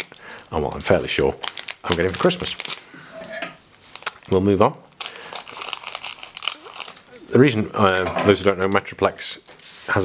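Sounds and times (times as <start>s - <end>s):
foil pack crinkling: 0.0s - 2.9s, 3.8s - 10.0s.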